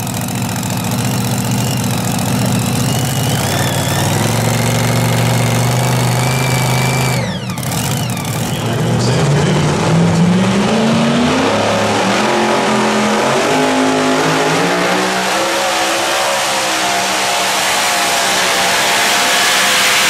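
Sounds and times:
low steady tractor engine: 0.0 - 9.6
racing tractor engine revving: 0.0 - 20.0.

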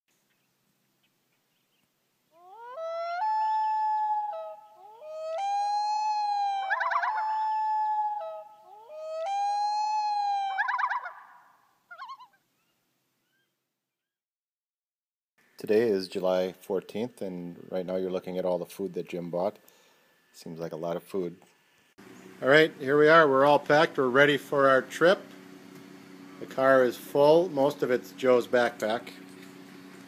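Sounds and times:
loon wailing calls: 2.4 - 13.5.

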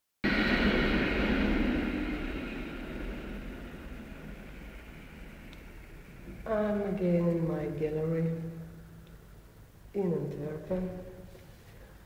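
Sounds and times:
high-pitched tram whine: 0.2 - 9.8
tram rolling rumble: 0.2 - 11.8.

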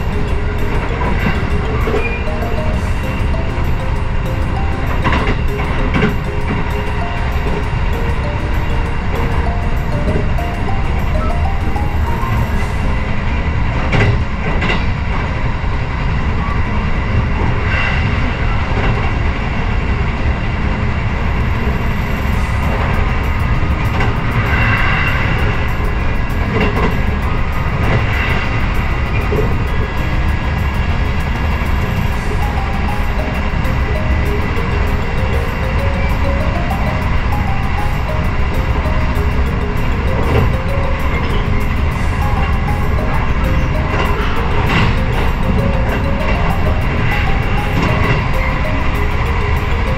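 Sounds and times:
train rumble inside carriage: 0.0 - 49.9.

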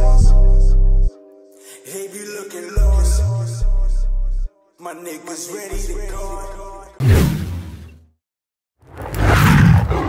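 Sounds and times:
loud roar: 8.9 - 10.0.

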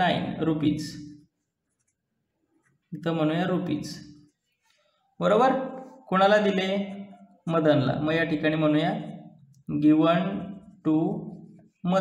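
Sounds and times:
pen scratching on paper: 10.2 - 12.0.

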